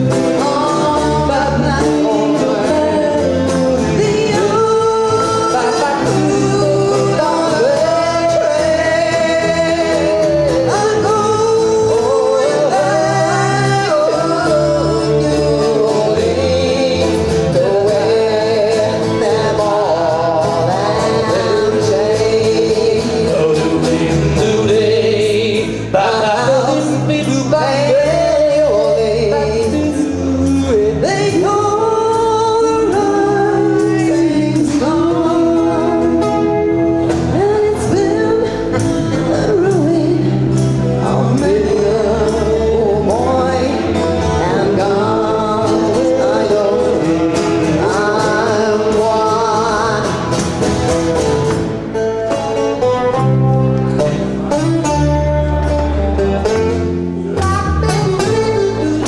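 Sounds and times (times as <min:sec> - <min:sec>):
woman singing into microphone: 0:00.0 - 0:50.6, 0:57.3 - 0:59.0
strummed acoustic guitar: 0:00.0 - 0:59.0.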